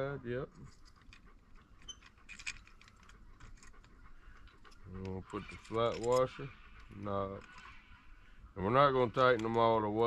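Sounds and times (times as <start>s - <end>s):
small metal hardware clinking: 0.7s - 4.8s, 5.7s - 6.4s.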